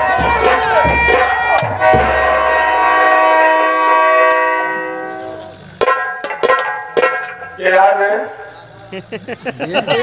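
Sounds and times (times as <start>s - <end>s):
sharp drum stroke: 0.0s - 3.3s
harmonium chord: 0.0s - 8.4s.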